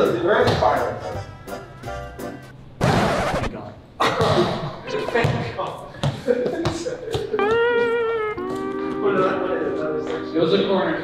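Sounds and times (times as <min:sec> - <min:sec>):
voices: 0:04.0 - 0:11.0
background music held note: 0:07.4 - 0:11.0.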